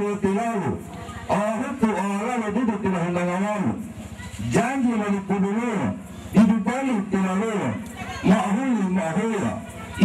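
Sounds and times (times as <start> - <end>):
man reciting in sing-song tones: 0.0 - 3.8, 4.4 - 9.7.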